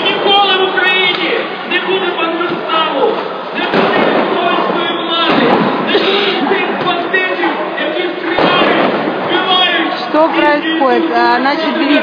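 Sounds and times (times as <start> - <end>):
voices in busy scene: 0.0 - 12.0
bang: 2.4 - 7.3, 8.3 - 9.8.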